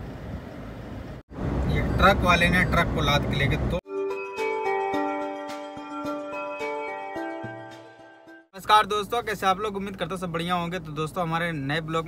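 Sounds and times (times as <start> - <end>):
road and engine noise inside car: 0.0 - 3.8.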